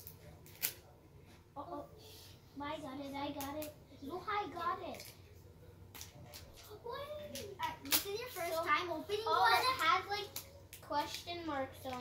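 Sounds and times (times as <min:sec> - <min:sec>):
child's voice: 0:02.6 - 0:05.1, 0:06.7 - 0:12.0.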